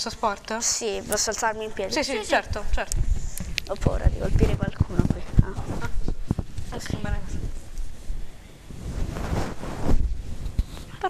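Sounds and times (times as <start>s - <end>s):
clothing rustle: 3.0s - 11.0s
golf club swishing through air: 7.4s - 10.9s.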